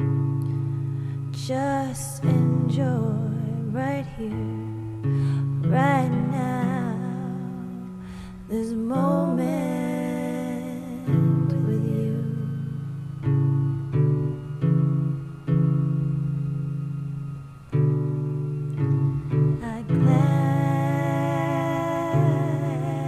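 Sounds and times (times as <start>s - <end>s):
held wavering melody line: 0.0s - 23.0s
plucked guitar notes: 0.0s - 23.0s.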